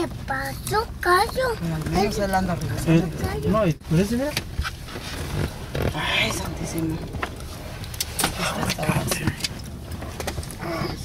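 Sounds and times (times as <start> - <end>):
wind buffeting a vehicle: 0.0 - 11.0.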